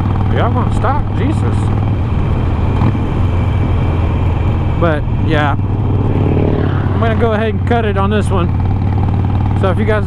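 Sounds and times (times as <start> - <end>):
motorcycle engine rumble: 0.0 - 10.0
wind and road noise: 0.0 - 10.0.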